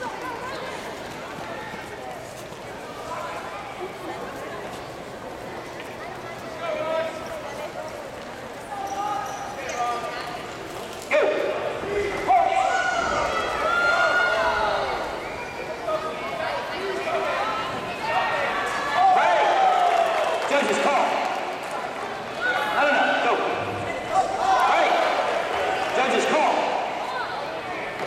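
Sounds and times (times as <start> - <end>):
man speaking over public address: 20.4 - 21.4, 22.7 - 23.7, 25.9 - 26.9.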